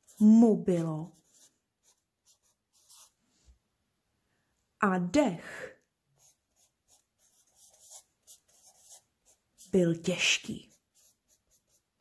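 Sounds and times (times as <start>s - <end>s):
marker scratching on paper: 0.0s - 3.2s, 6.2s - 12.0s.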